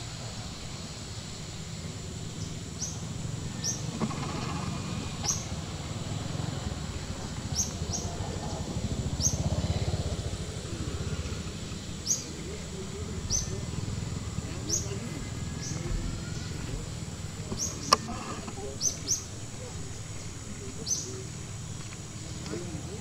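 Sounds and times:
low outdoor rumble: 0:00.0 - 0:23.0
small bird chirping: 0:00.8 - 0:22.9.

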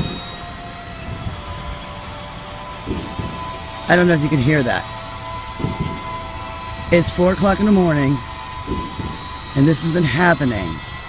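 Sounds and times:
distant rumble: 0:00.0 - 0:11.0
faint whining tones: 0:00.0 - 0:11.0.

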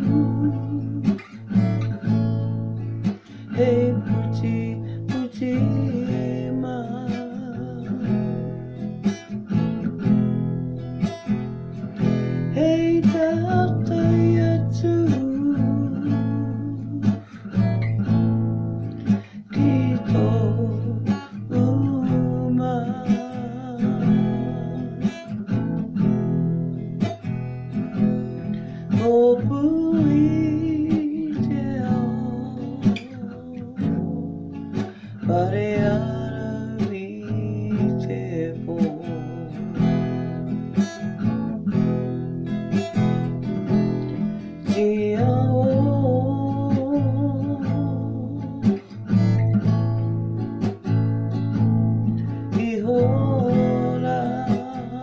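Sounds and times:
woman singing with vibrato: 0:00.0 - 0:01.4
strummed acoustic guitar: 0:00.0 - 0:55.0.

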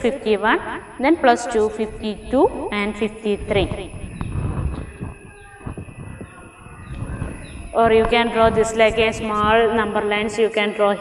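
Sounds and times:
low rumbling noise: 0:00.0 - 0:10.4.

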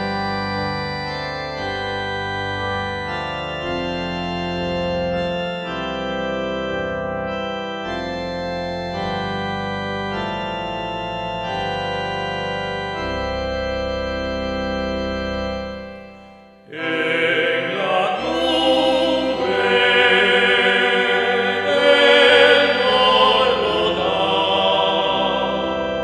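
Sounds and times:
organ playing slow chords: 0:00.0 - 0:26.0.

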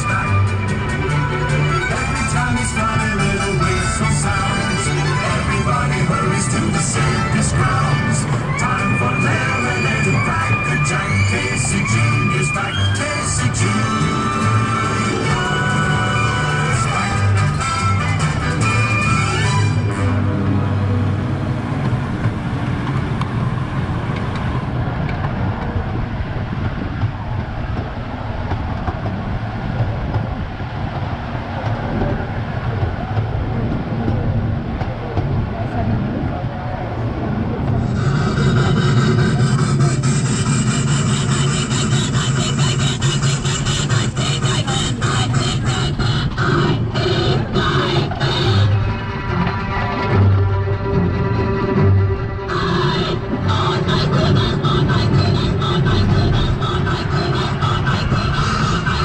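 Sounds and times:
ride music playing: 0:00.0 - 0:59.0
train wheels rumbling on rails: 0:00.0 - 0:59.0.

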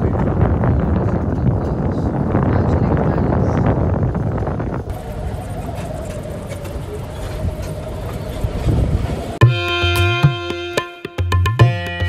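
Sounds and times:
low rumble of cart ride: 0:00.0 - 0:09.4.

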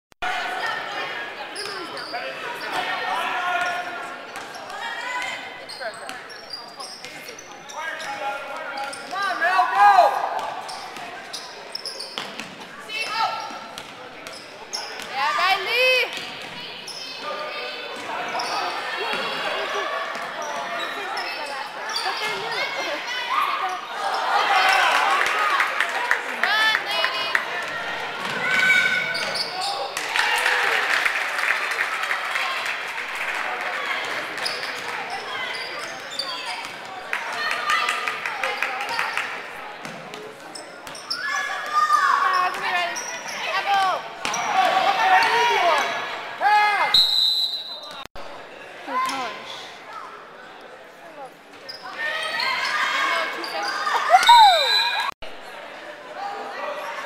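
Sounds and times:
sneakers squeaking: 0:01.5 - 0:02.9, 0:03.6 - 0:09.4, 0:10.1 - 0:17.3, 0:17.9 - 0:24.9, 0:27.7 - 0:30.0, 0:34.0 - 0:36.8, 0:39.9 - 0:44.6, 0:47.4 - 0:48.1, 0:51.2 - 0:55.1.

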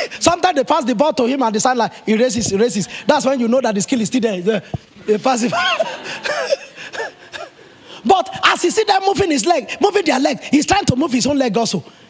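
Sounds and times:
breathy gasping laughter: 0:05.5 - 0:07.6.

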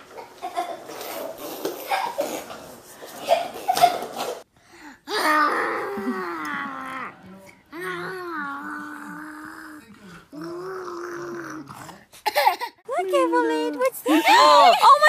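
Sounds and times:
person making drawn-out wordless sounds: 0:05.1 - 0:12.1.

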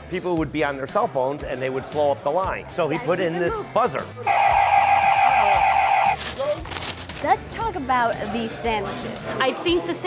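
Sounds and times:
electric buzzer tone: 0:04.3 - 0:06.1.

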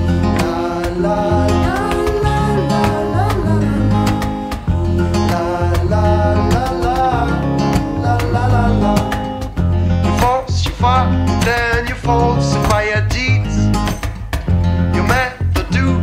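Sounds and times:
steady low bass line: 0:00.0 - 0:11.4
folk-blues guitar: 0:00.0 - 0:16.0.

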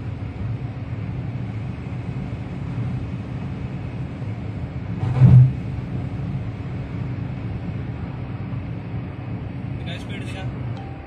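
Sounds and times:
engine and road drone: 0:00.0 - 0:11.0.

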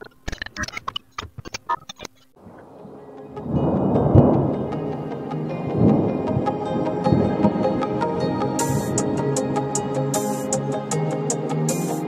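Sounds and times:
sharp clicks and crackles: 0:00.0 - 0:02.7
rain: 0:02.4 - 0:09.8
thunder rumbling: 0:02.4 - 0:09.9
slow ambient music: 0:02.4 - 0:12.0.

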